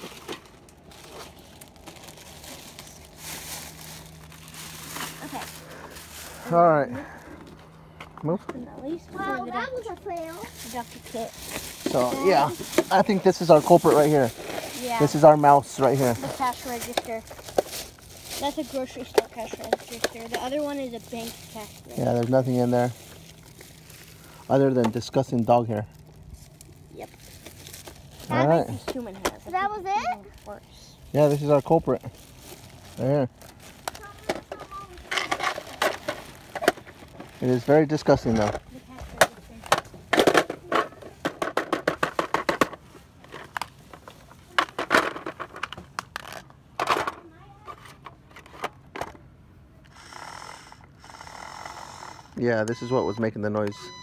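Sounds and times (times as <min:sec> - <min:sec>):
plastic toy handling rustle: 0:00.0 - 0:07.6, 0:08.4 - 0:49.3.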